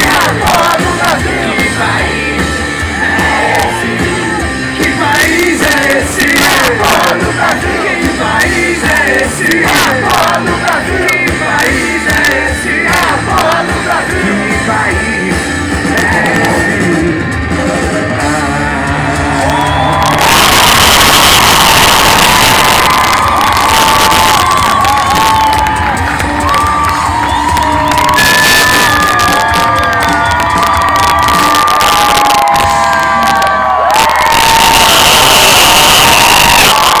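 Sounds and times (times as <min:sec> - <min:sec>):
crowd cheering and whistling: 0:00.0 - 0:09.0, 0:17.8 - 0:37.0.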